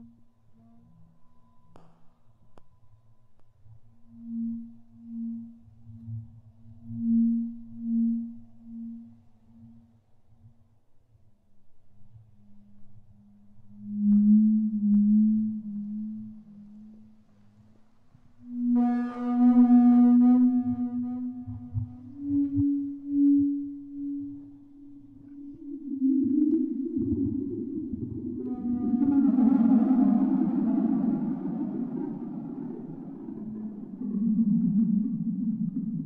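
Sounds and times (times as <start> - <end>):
slow ambient music: 0.0 - 36.0.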